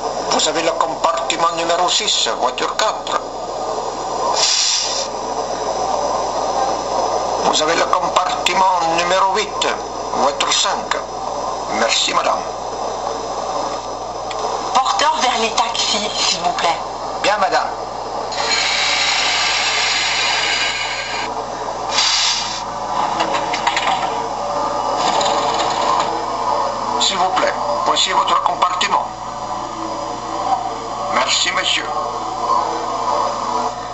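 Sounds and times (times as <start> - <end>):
recorded steam locomotive hiss: 4.2 - 5.3, 18.4 - 21.3, 21.9 - 22.8
model train motor whirring: 4.4 - 5.1, 18.3 - 21.3, 21.9 - 22.6.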